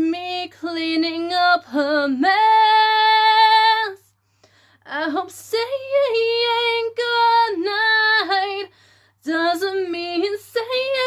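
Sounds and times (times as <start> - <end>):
woman singing a cappella: 0.0 - 4.2, 4.8 - 11.0.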